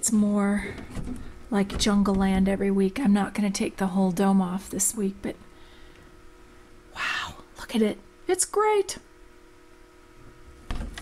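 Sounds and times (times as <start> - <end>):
low electrical hum: 0.0 - 11.0
handling knock and rustle: 0.6 - 2.8.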